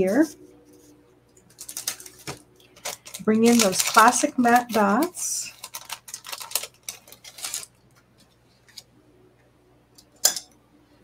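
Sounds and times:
paper rustling: 0:00.0 - 0:08.9.

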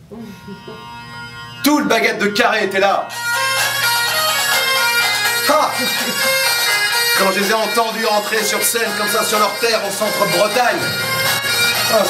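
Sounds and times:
bagpipe band playing: 0:00.4 - 0:12.0.

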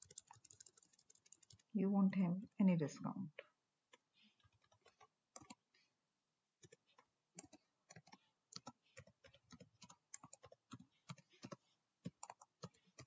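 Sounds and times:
computer keyboard typing: 0:00.0 - 0:01.7, 0:03.9 - 0:05.6, 0:06.6 - 0:13.0.

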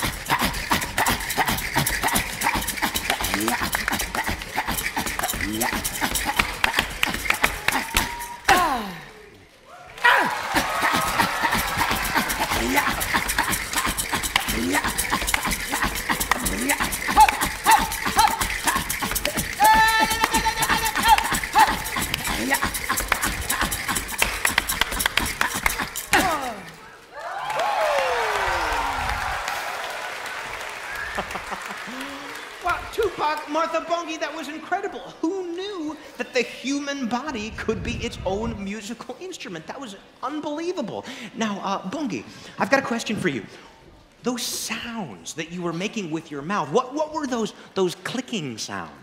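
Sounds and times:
tongue clicks: 0:00.0 - 0:08.6, 0:10.9 - 0:26.8
hand claps and body slaps: 0:00.3 - 0:08.6, 0:10.3 - 0:26.8
audience applause and cheering: 0:09.7 - 0:22.3, 0:26.6 - 0:34.5.

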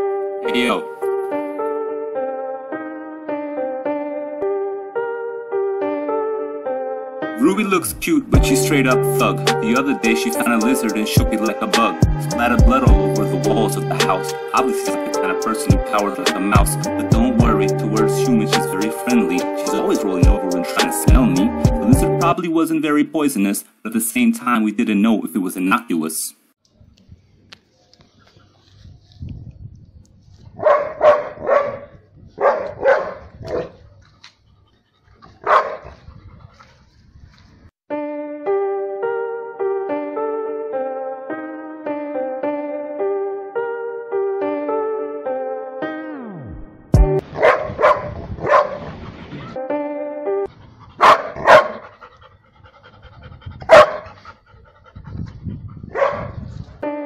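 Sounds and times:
dog barking: 0:30.6 - 0:33.8, 0:35.3 - 0:36.1, 0:47.2 - 0:49.0, 0:51.0 - 0:52.0, 0:53.7 - 0:54.2, 0:55.9 - 0:56.4.

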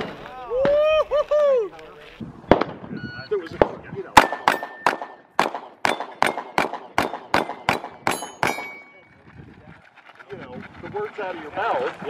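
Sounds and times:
rapid pistol fire: 0:04.2 - 0:08.6
steel targets ringing: 0:04.2 - 0:09.1.

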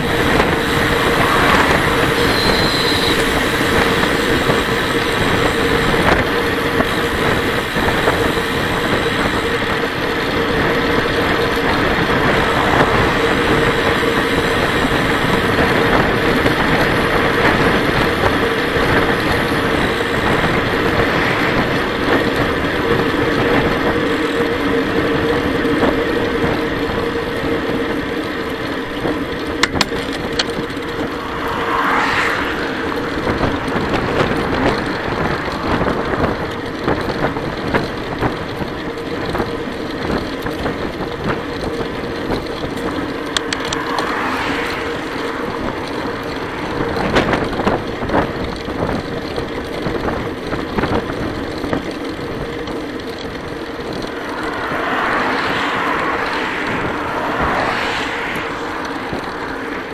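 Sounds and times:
wind rushing: 0:00.0 - 0:24.0, 0:30.2 - 0:37.8, 0:43.4 - 0:48.9, 0:53.2 - 0:59.9
tyres humming on road: 0:00.0 - 0:59.9.

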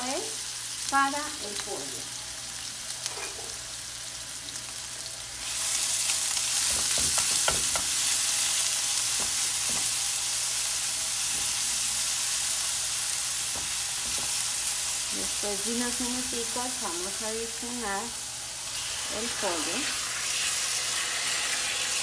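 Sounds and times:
food sizzling in oil: 0:00.0 - 0:22.0.

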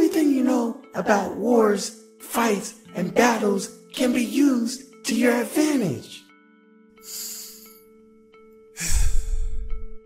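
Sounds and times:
soft background music: 0:00.0 - 0:10.0
man sighing heavily: 0:08.8 - 0:09.5.

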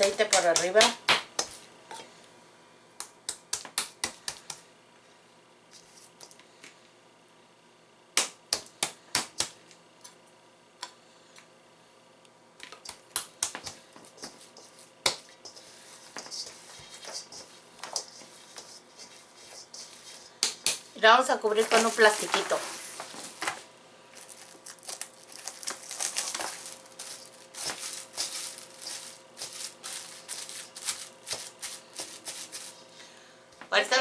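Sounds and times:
soft rustling: 0:21.6 - 0:32.9.

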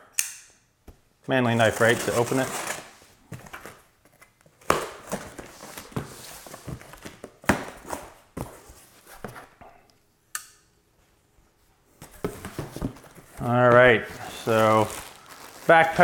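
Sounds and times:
cardboard flaps scraping: 0:12.0 - 0:16.0.

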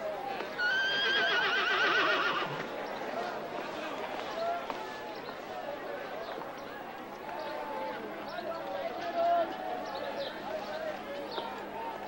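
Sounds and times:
murmur of voices: 0:00.0 - 0:12.0
horse whinnying: 0:00.6 - 0:02.6.

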